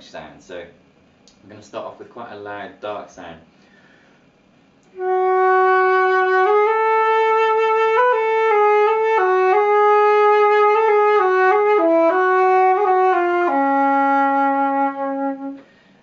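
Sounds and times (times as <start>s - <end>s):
flute playing slow melody: 4.9s - 15.7s.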